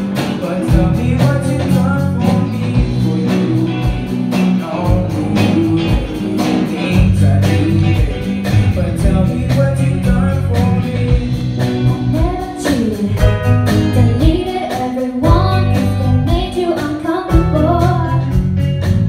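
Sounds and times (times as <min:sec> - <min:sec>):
electric bass: 0:00.0 - 0:14.6, 0:15.2 - 0:19.0
drum kit beat: 0:00.0 - 0:19.0
electric guitar: 0:00.0 - 0:19.0
keyboard: 0:00.0 - 0:19.0
woman singing: 0:11.6 - 0:18.4.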